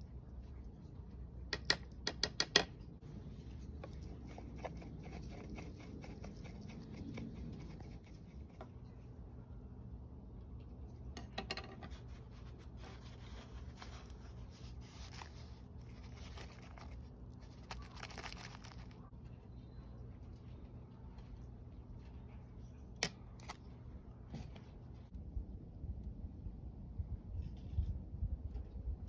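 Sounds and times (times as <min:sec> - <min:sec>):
faint low hum: 0:00.0 - 0:29.0.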